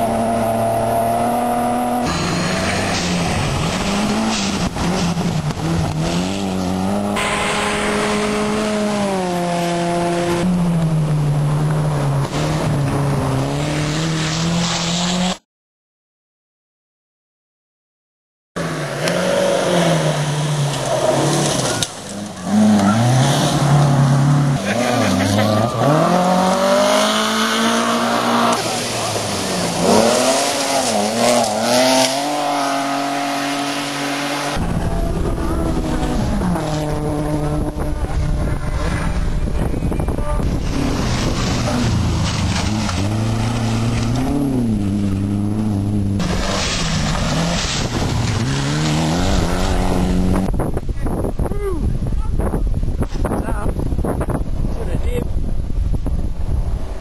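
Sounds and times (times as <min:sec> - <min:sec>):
car engine low rumble: 0:00.0 - 0:14.2, 0:19.8 - 0:57.0
rally car engines revving: 0:00.0 - 0:15.4, 0:18.6 - 0:51.5
tyre and road noise: 0:00.0 - 0:15.4, 0:18.6 - 0:57.0.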